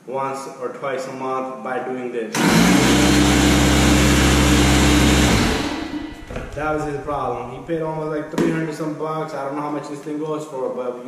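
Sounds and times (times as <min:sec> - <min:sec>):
air compressor running: 0:02.4 - 0:08.5.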